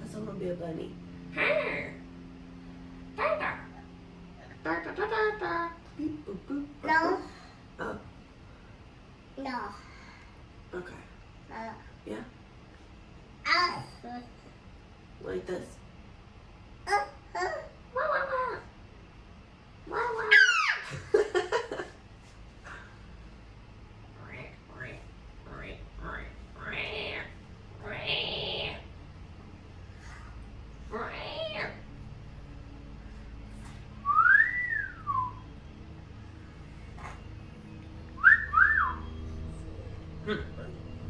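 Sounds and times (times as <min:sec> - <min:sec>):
woman whistling: 0:34.0 - 0:35.4, 0:38.2 - 0:39.1.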